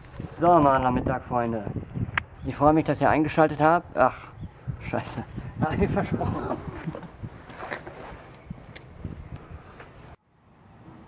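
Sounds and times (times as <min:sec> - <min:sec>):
wind buffeting microphone: 0:00.0 - 0:10.2.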